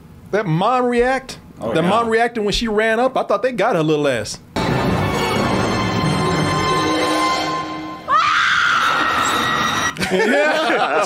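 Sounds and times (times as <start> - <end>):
woman screaming: 8.0 - 10.0.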